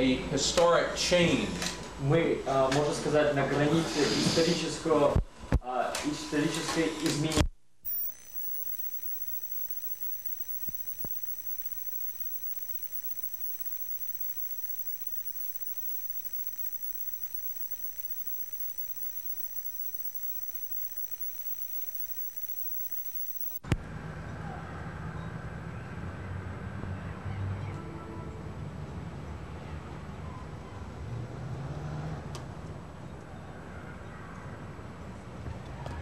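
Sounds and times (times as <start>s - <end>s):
outdoor ambience: 7.9s - 23.6s
small clicks: 7.9s - 23.6s
thin high whine: 7.9s - 23.6s.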